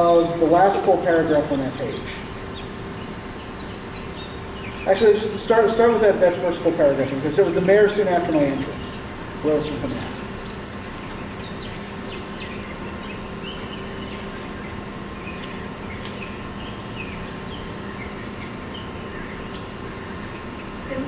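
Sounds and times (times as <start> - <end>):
ventilation hum: 0.0 - 21.0.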